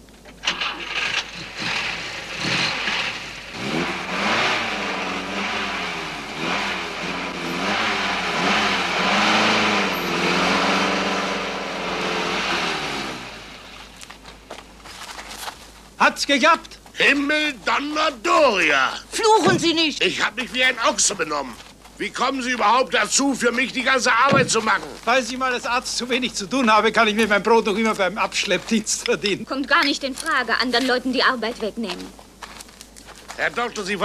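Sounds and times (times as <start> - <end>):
car engine revving: 0.5 - 14.0
knocks: 24.3 - 24.7.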